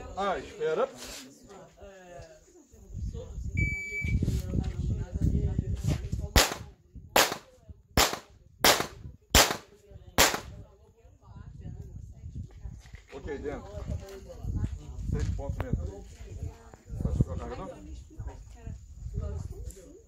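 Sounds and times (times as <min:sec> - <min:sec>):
pistol shots: 0:06.4 - 0:06.6, 0:07.2 - 0:10.5.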